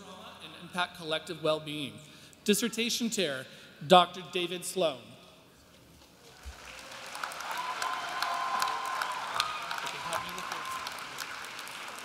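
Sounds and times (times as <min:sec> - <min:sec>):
audience applause: 0:06.3 - 0:12.0
person cheering: 0:07.4 - 0:11.2.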